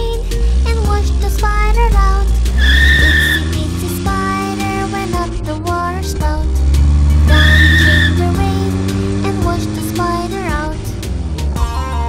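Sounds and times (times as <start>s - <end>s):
low engine-like tone: 0.0s - 11.5s
children's song backing track: 0.0s - 12.0s
cartoon tyre squeal: 2.6s - 3.6s, 7.3s - 8.4s.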